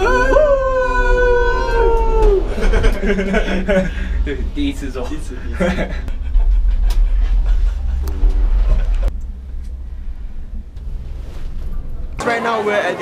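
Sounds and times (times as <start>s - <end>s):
gondola cabin rumble: 0.0s - 12.2s.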